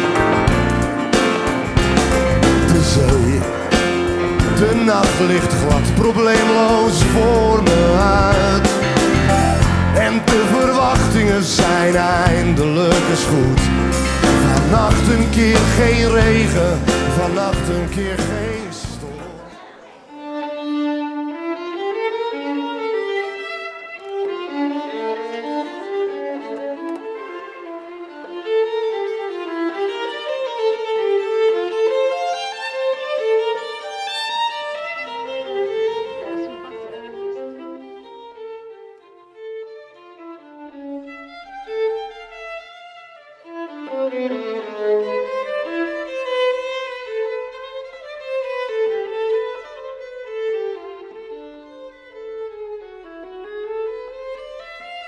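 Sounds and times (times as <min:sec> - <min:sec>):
violin melody: 0:00.0 - 0:55.0.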